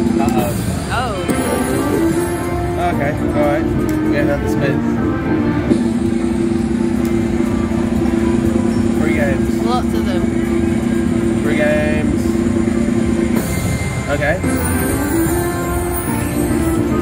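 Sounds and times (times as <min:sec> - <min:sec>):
slot machine electronic drone: 0:00.0 - 0:17.0
casino chatter: 0:00.1 - 0:04.8.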